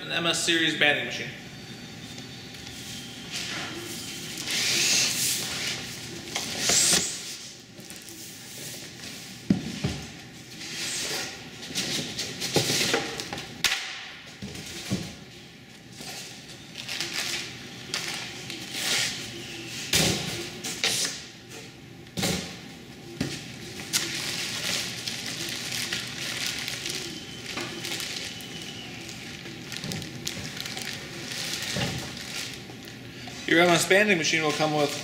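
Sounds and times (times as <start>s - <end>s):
plastic wrapping crinkling: 23.7s - 33.8s.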